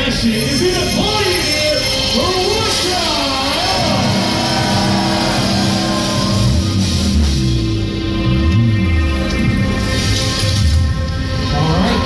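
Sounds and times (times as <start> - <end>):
live band music: 0.9 - 12.0.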